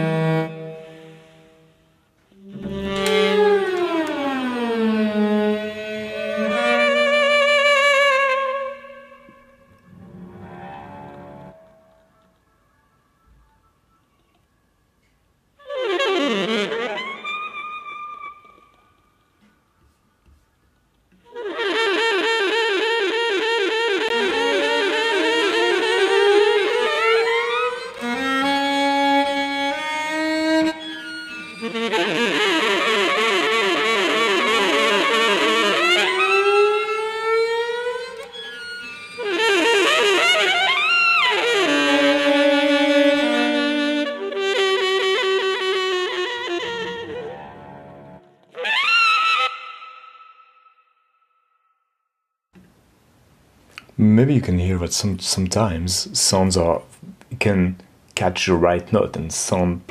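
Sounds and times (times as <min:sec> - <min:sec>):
cello playing: 0:00.0 - 0:12.6, 0:15.6 - 0:19.0, 0:21.3 - 0:50.2
saxophone playing: 0:00.0 - 0:13.6, 0:21.3 - 0:50.8.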